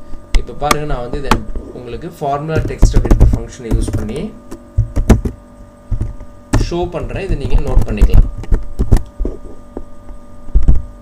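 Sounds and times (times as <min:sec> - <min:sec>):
man speaking: 0:00.4 - 0:04.4, 0:06.6 - 0:08.3.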